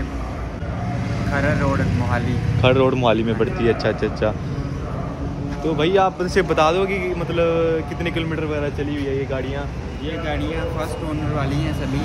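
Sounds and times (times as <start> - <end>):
vehicle engine and road rumble: 0.0 - 12.0
people talking: 5.6 - 12.0.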